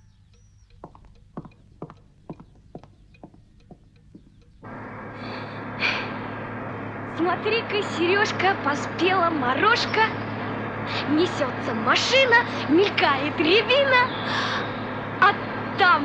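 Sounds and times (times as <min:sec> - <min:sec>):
clock ticking: 0:00.0 - 0:04.7
truck engine running in cab: 0:00.0 - 0:16.0.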